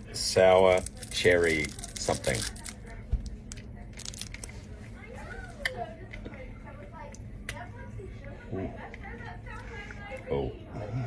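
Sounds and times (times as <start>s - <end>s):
faint background voices: 0.7s - 11.0s.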